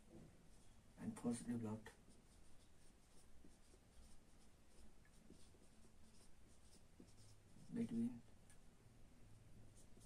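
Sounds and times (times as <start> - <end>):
marker writing on whiteboard: 1.9 - 8.0, 9.7 - 10.0.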